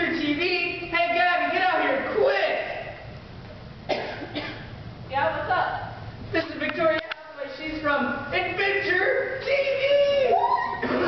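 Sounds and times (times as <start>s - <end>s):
person coughing: 3.9s - 4.7s.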